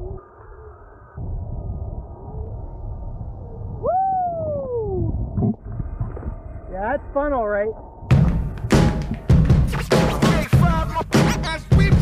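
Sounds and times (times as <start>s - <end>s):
person whooping yell: 3.8s - 5.1s.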